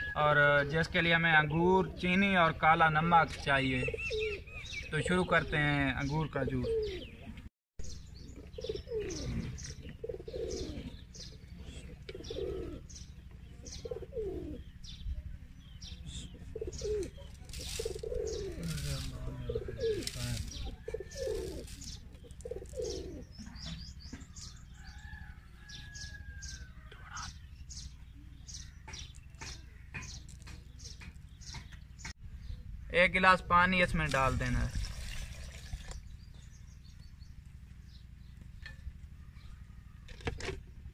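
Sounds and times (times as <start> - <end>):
doves cooing: 0.0 - 32.0
small birds chirping: 0.0 - 40.9.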